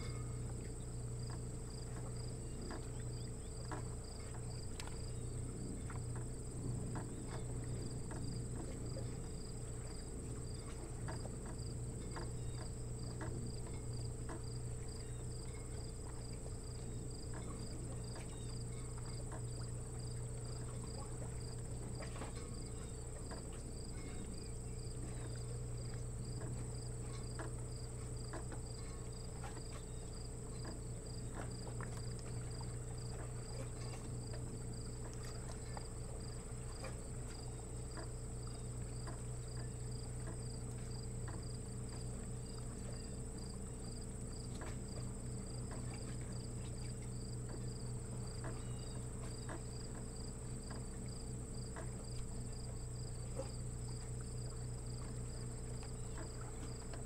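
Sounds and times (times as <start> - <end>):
insects trilling: 0.0 - 57.0
low hum: 0.0 - 57.0
pulsing insect chirp: 0.0 - 57.0.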